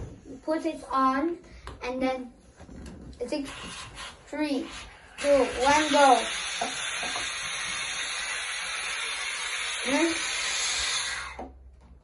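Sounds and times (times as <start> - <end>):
air hissing out of balloon: 3.3 - 11.6.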